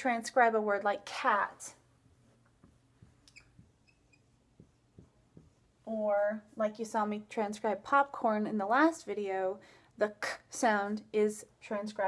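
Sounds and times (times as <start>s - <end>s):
marker tapping on whiteboard: 2.0s - 5.7s
marker squeaks on whiteboard: 3.2s - 5.6s.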